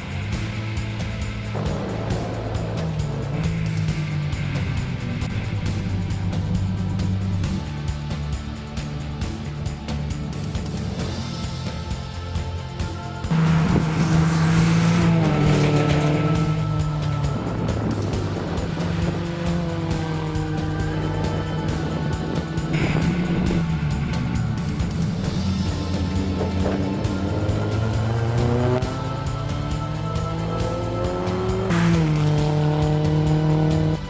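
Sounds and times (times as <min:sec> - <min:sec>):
race car engine accelerating: 0:00.0 - 0:07.6, 0:13.3 - 0:34.0
music: 0:00.0 - 0:34.0.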